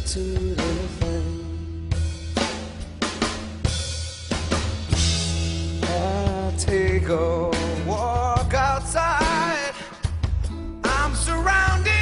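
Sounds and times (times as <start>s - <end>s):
rock drum kit: 0.0s - 12.0s
steady bass line: 0.0s - 12.0s.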